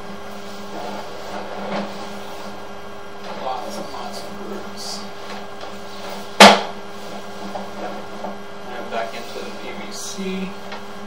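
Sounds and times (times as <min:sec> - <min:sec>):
steady low hum: 0:00.0 - 0:11.0
sharp knock: 0:06.4 - 0:06.8.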